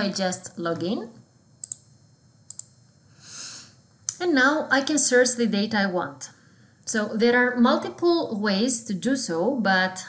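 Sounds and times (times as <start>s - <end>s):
computer mouse clicks: 1.6s - 1.9s, 2.5s - 2.8s.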